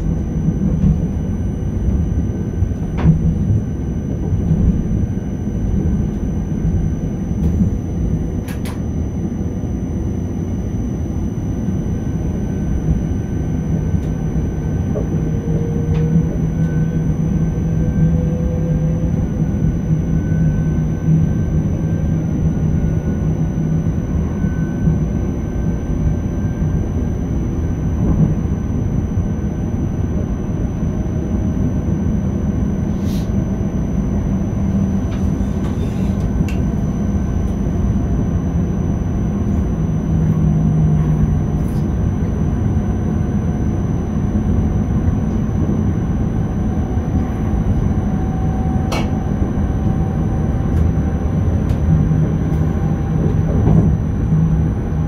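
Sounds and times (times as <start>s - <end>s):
train rumbling on rails: 0.0s - 55.0s.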